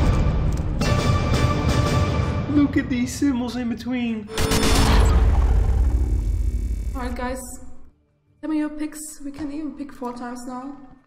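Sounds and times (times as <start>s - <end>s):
deep rumble: 4.4s - 7.9s.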